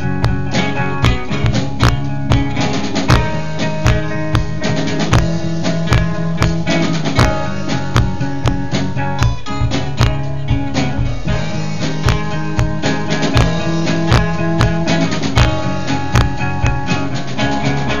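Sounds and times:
drum kit steady beat: 0.0s - 18.0s
strummed acoustic guitar: 0.0s - 18.0s.

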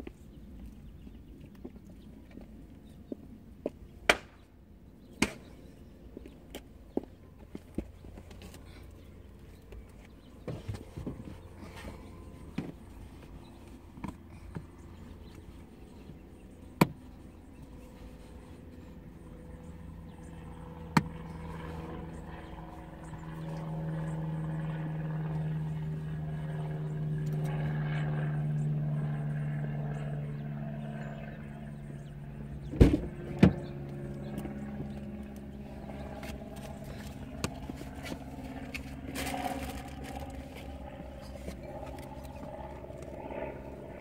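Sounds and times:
engine-like hum: 0.0s - 44.0s.

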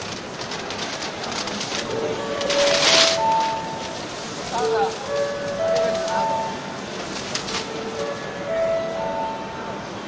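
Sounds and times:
busy exhibition hall din: 0.0s - 10.0s.

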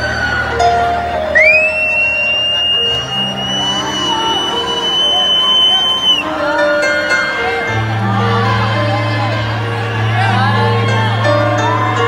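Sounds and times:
crowd noise: 0.0s - 12.0s
long high whistle: 1.3s - 6.3s.

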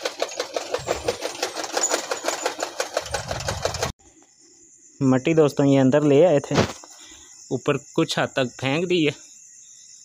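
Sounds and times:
small machine clicking rapidly: 0.0s - 4.0s.

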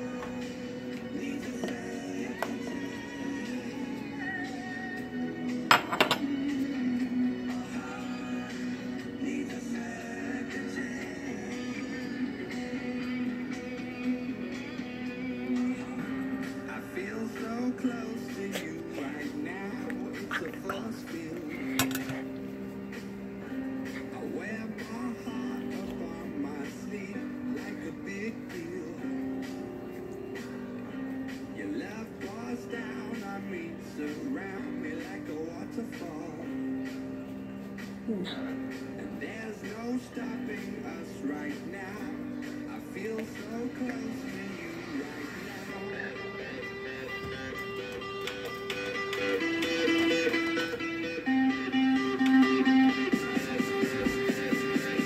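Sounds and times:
pop song with vocals on radio: 0.0s - 55.0s.

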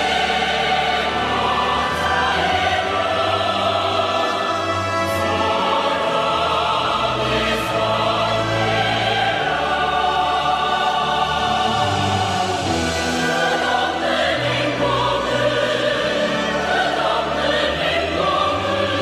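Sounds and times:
choir singing with accompaniment: 0.0s - 19.0s.

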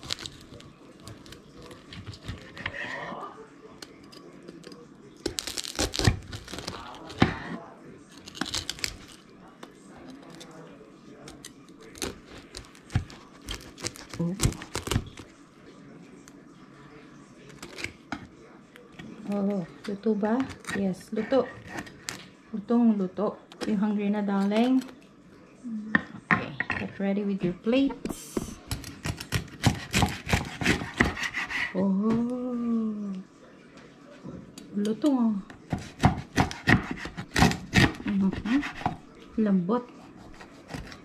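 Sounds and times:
knife crunching through crackling skin: 0.0s - 2.8s, 4.0s - 7.2s, 8.1s - 9.2s, 11.3s - 15.2s, 17.5s - 18.0s.

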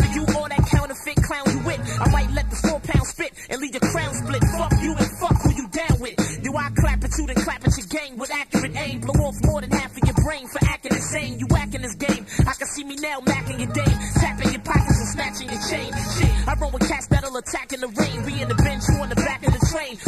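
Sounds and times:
deep bass line: 0.0s - 0.7s, 1.5s - 3.0s, 3.8s - 5.5s, 6.2s - 7.6s, 8.6s - 10.0s, 11.0s - 12.3s, 13.3s - 17.2s, 18.0s - 19.6s
rapping over a beat: 0.0s - 20.0s.

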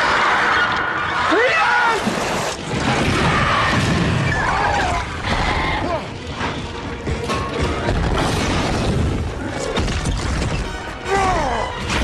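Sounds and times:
crashes and booms: 2.1s - 5.4s.

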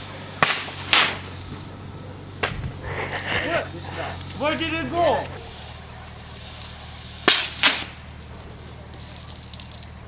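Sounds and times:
water rocket bursts: 0.0s - 1.4s, 2.9s - 10.0s.

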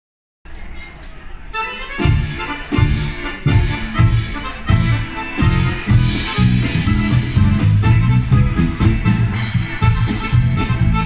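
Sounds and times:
accordion playing: 1.6s - 11.0s
full band with bass and drums: 1.9s - 11.0s.

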